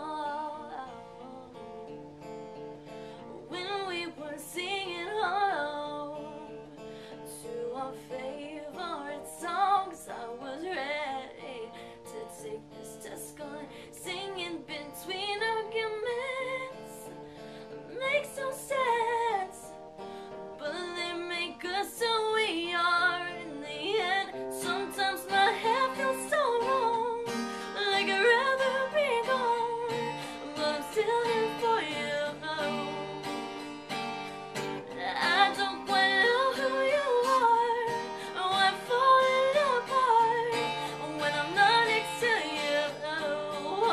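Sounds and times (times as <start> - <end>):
woman singing: 0.0 - 1.9, 2.9 - 43.9
strummed acoustic guitar: 0.0 - 43.9.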